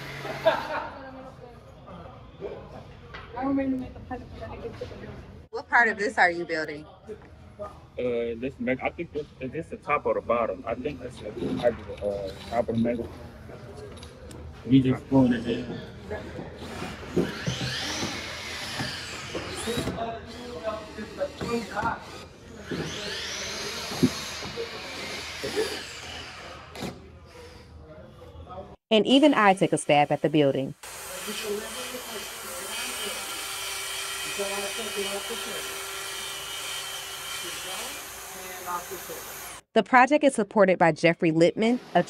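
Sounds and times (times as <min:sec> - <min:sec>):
circular saw running: 0:00.0 - 0:00.8, 0:17.2 - 0:26.7, 0:29.6 - 0:39.6
cordless drill driving a screw: 0:16.6 - 0:26.9, 0:30.8 - 0:39.7.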